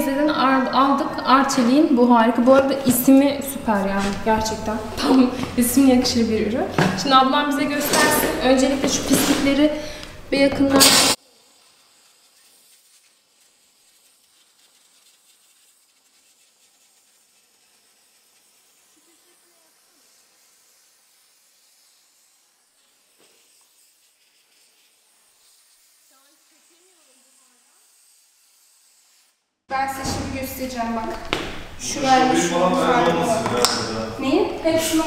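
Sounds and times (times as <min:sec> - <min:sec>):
steam cleaner hissing: 0:07.9 - 0:29.1.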